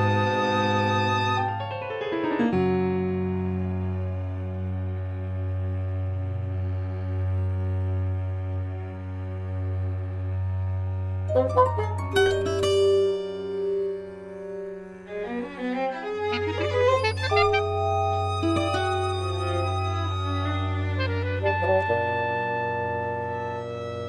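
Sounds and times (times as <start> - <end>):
low bowed string drone: 0.0 - 1.4, 3.3 - 24.0
held higher tone: 11.3 - 15.1, 16.6 - 22.0
sharp struck and plucked notes: 11.3 - 15.2, 17.0 - 21.0.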